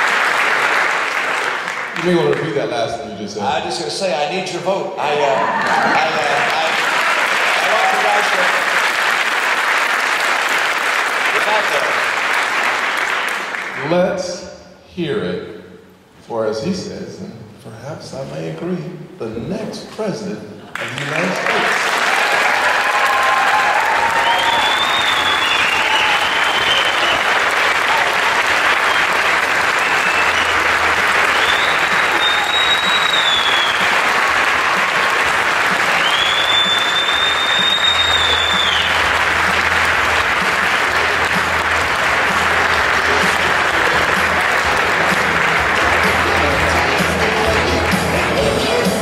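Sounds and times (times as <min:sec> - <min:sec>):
large audience applauding: 0:00.0 - 0:03.0, 0:05.0 - 0:13.9, 0:20.7 - 0:49.0
high whistles: 0:24.0 - 0:27.5, 0:28.6 - 0:34.2, 0:35.7 - 0:39.1
music playing: 0:24.0 - 0:49.0.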